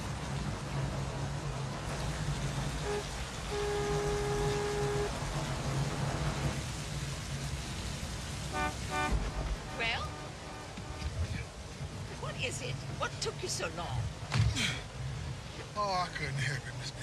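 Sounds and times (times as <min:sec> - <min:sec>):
rain falling on cars: 0:00.0 - 0:17.0
car horn blasts: 0:02.8 - 0:05.3, 0:08.5 - 0:11.2.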